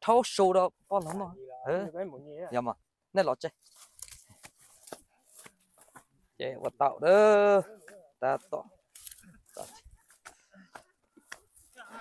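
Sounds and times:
footsteps through dry grass: 0.2 - 12.0.

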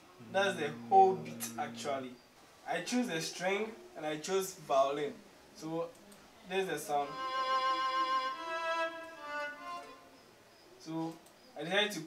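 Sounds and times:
sustained violin notes: 0.2 - 2.2, 7.0 - 10.2.

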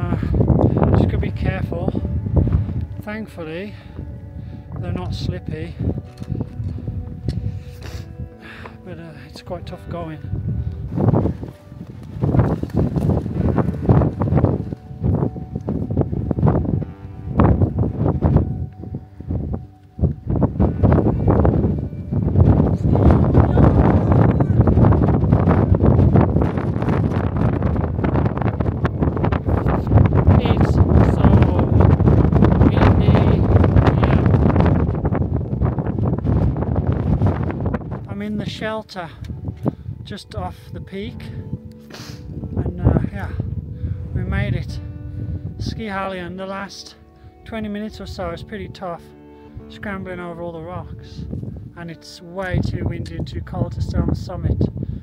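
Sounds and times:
strong wind buffeting microphone: 0.0 - 46.4, 47.2 - 55.0.

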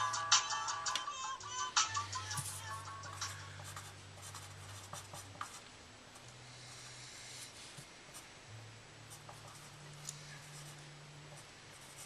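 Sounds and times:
pencil scratching on paper: 3.2 - 5.6, 11.7 - 12.0.

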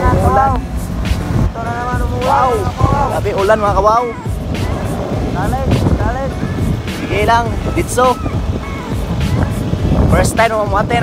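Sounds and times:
background music: 0.0 - 11.0
wind and road noise: 0.0 - 11.0
person speaking: 1.5 - 9.5.

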